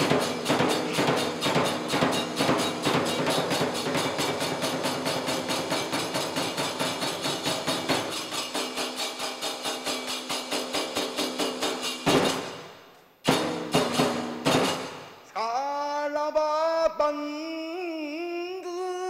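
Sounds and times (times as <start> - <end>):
taiko drum beat: 0.0 - 12.6, 13.3 - 15.1
hand cymbals: 0.0 - 15.3.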